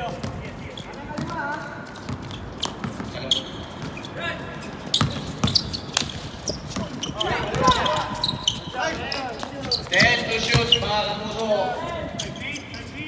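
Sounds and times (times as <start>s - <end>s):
basketball bouncing on court: 0.0s - 4.1s, 4.9s - 11.1s
players' voices: 0.0s - 13.0s.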